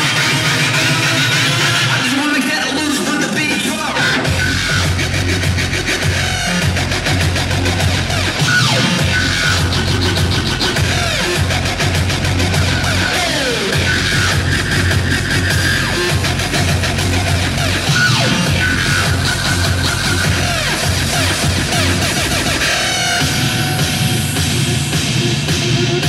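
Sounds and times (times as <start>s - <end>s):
hardstyle dance music: 0.0s - 26.0s.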